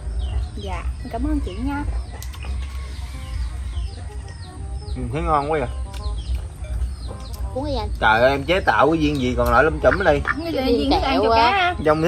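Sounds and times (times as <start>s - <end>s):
quiet background music: 0.0s - 12.0s
small bird chirping: 0.0s - 12.0s.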